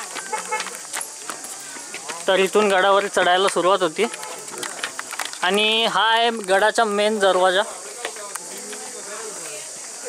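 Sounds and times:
footsteps on stone steps: 0:00.0 - 0:10.0.

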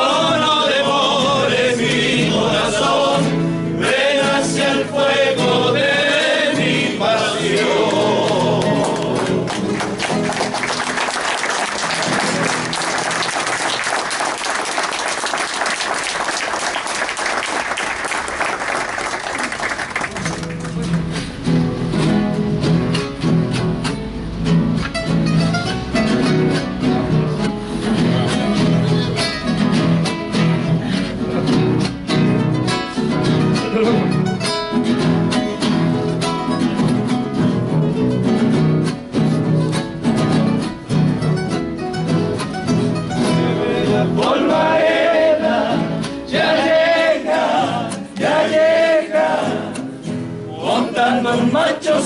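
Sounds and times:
acoustic guitars strumming: 0:00.0 - 0:52.0
crowd applauding: 0:07.8 - 0:21.3.

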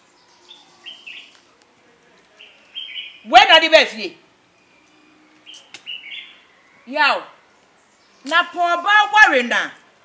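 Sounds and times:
bird chirping: 0:00.0 - 0:01.6, 0:02.3 - 0:03.6, 0:04.4 - 0:09.5.

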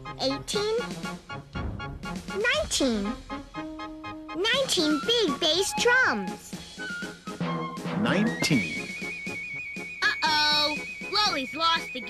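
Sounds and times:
background music: 0:00.0 - 0:12.0
high wavering tone: 0:08.5 - 0:12.0.

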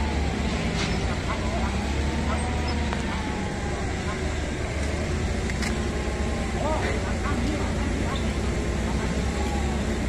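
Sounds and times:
forklift engine rumbling: 0:00.0 - 0:10.0.

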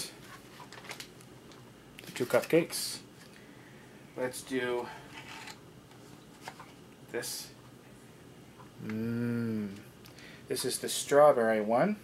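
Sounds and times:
rustling and handling noise: 0:00.0 - 0:03.6, 0:04.2 - 0:07.8.

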